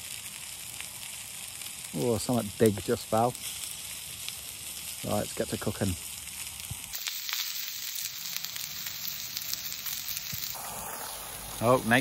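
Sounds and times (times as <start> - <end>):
meat sizzling in a frying pan: 0.0 - 12.0.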